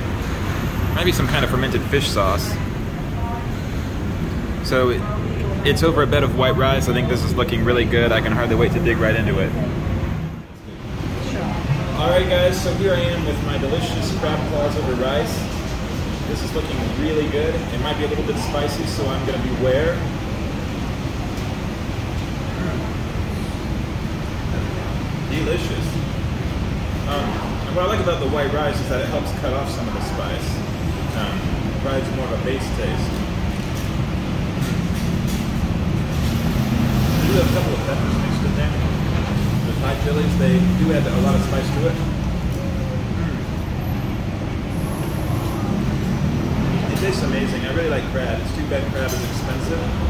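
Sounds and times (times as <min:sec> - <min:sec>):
busy eatery background rumble: 0:00.0 - 0:50.0.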